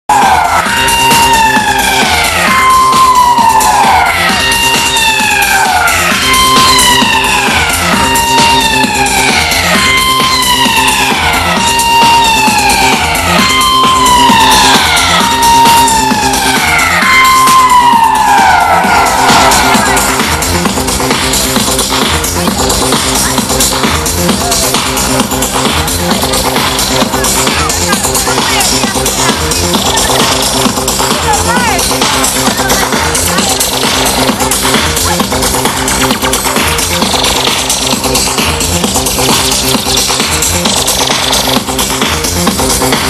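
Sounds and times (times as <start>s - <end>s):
falling synth siren wail: 0.1s - 37.2s.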